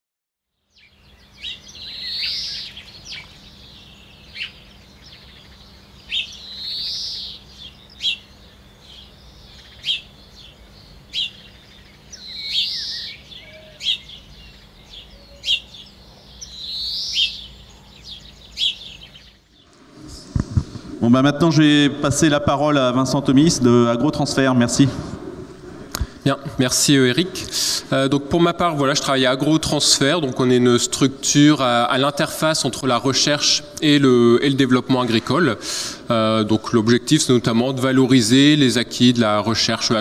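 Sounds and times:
bird chirping: 0.5 - 24.8
long bird call: 0.8 - 21.0.

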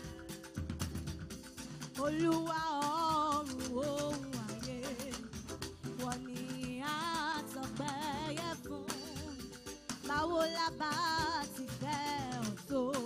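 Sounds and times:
drums and percussion: 0.0 - 13.0.

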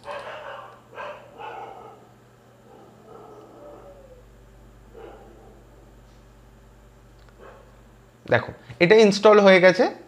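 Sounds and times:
faint dog barks: 0.0 - 4.3, 4.9 - 6.0, 7.4 - 7.8.

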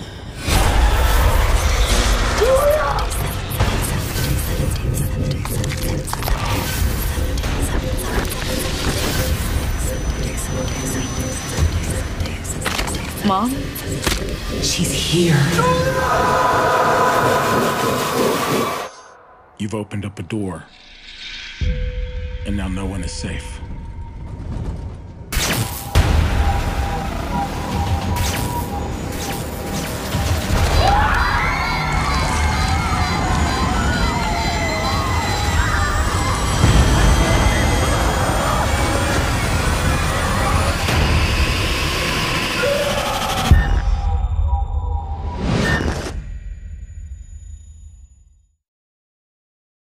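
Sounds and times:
rumbling horror score: 0.0 - 47.4
harsh screeching noise: 15.4 - 19.4
low rumble: 31.6 - 45.3
sudden hit: 36.4 - 42.0.

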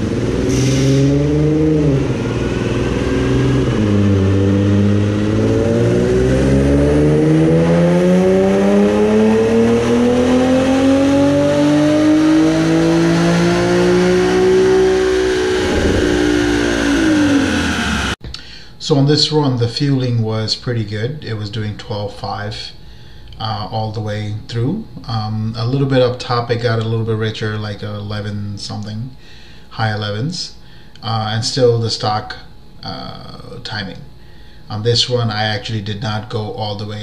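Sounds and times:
car engine full-throttle pull: 0.0 - 18.2
dyno rollers winding down: 0.0 - 18.2.

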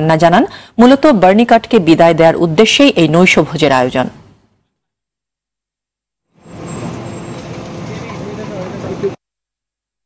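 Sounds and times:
traffic noise: 6.4 - 9.2
vehicle engine: 6.4 - 9.2.

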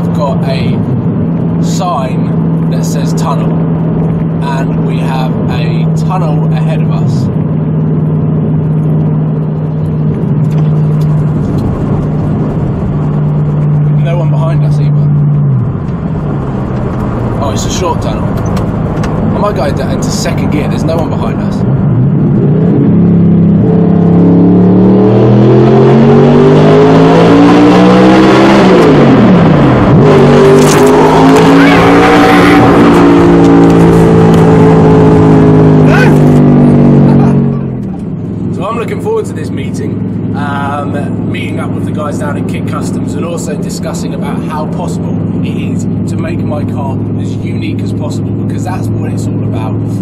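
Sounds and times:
car engine accelerating: 0.0 - 50.0.

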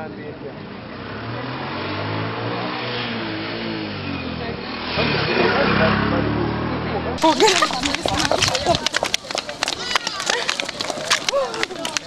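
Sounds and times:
voices talking: 5.1 - 12.0.

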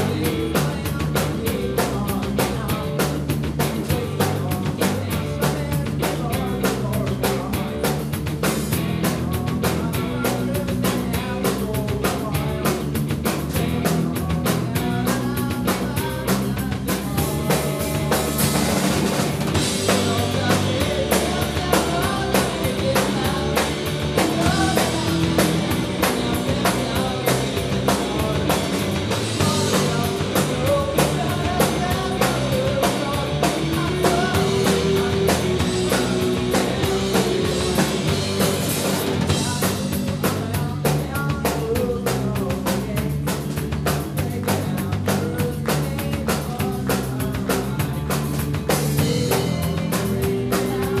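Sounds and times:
drum kit: 0.0 - 51.0
electric bass: 0.0 - 51.0
electric guitar: 0.0 - 51.0.

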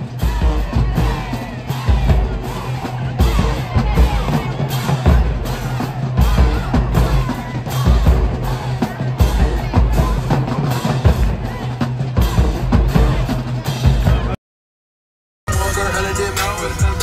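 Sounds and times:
bass drums and snares beating: 0.0 - 14.4
marching band playing: 0.0 - 14.4, 15.5 - 17.0.

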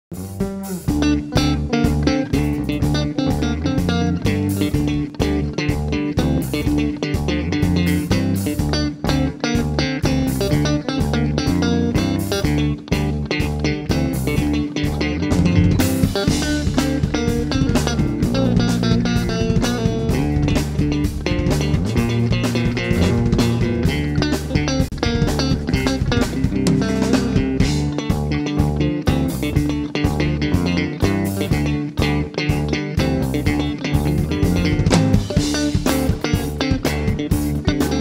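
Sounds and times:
bass guitar: 0.0 - 38.0
drum kit: 0.1 - 38.0
electric guitar: 0.1 - 38.0.

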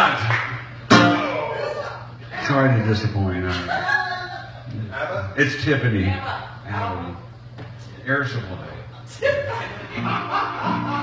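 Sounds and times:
acoustic guitar chord strummed: 0.8 - 1.6, 10.0 - 11.0.

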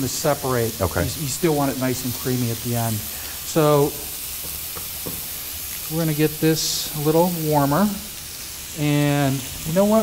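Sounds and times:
food sizzling in a hot pan: 0.0 - 10.0.

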